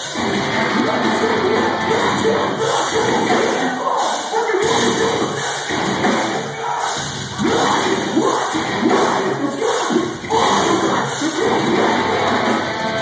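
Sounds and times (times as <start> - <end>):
crowd yelling: 0.0 - 13.0
metal band playing loud: 0.0 - 13.0
shouted vocals: 0.6 - 12.7.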